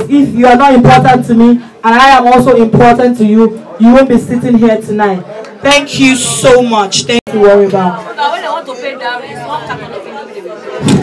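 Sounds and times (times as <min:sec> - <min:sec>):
party chatter in a large hall: 0:00.0 - 0:11.0.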